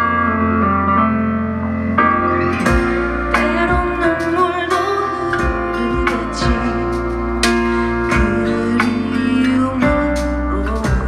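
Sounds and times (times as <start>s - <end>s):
guitar chords: 0.0s - 11.0s.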